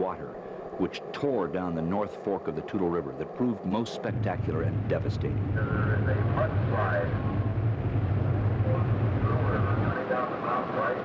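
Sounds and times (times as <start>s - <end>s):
faint voices: 0.0s - 11.0s
steady low rumble: 0.0s - 11.0s.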